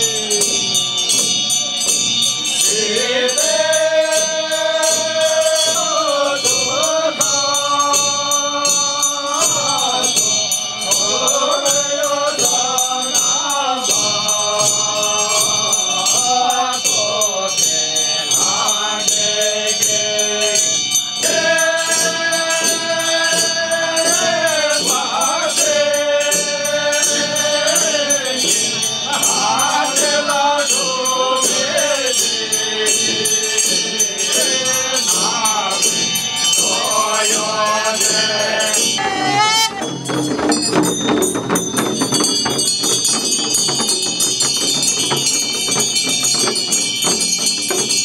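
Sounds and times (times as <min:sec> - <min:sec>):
monks chanting: 0:00.0 - 0:42.5
high metallic ringing: 0:00.0 - 0:48.0
person chanting: 0:21.2 - 0:40.0
frame drums struck: 0:38.8 - 0:48.0.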